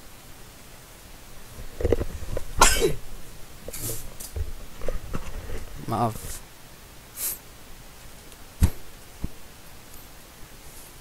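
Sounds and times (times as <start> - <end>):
man coughing: 2.6 - 3.0.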